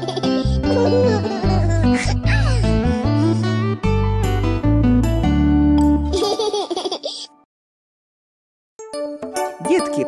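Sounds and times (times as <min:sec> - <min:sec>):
young children laughing: 0:00.0 - 0:02.7, 0:06.1 - 0:07.3.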